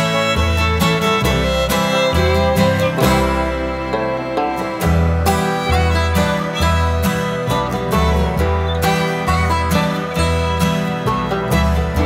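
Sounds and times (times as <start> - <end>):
acoustic guitar: 0.0 - 12.0
fiddle: 0.0 - 12.0.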